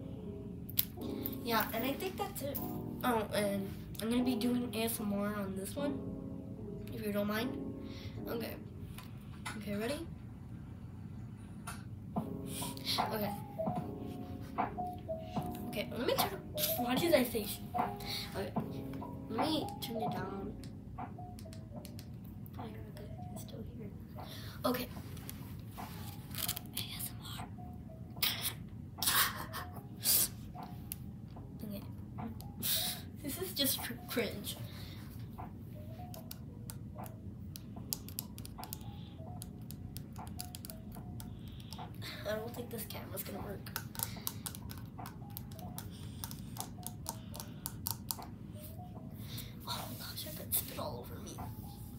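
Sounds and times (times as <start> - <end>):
faint music: 0.0 - 51.9
fingernails tapping on plastic brush: 43.7 - 48.4.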